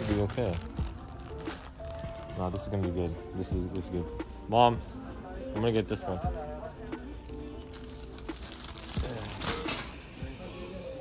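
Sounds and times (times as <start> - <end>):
plastic packaging crinkling: 0.0 - 2.8, 7.2 - 10.0.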